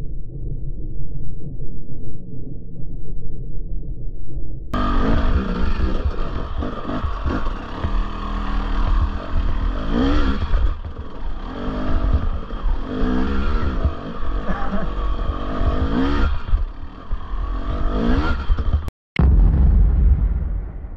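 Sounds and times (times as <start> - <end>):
dirt bike engine revving: 4.8 - 18.9.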